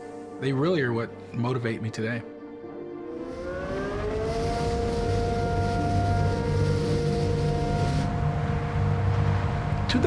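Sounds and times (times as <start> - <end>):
siren-like gliding tone: 2.9 - 9.8
rain: 4.2 - 10.0.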